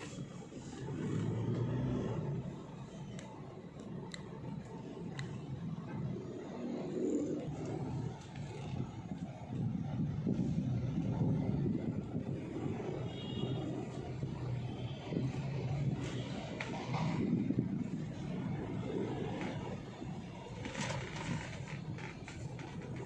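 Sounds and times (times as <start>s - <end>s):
car engine and tyre rumble: 0.0s - 23.0s.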